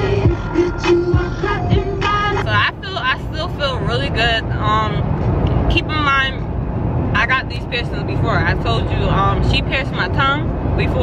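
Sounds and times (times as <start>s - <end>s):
car road drone: 0.0s - 11.0s.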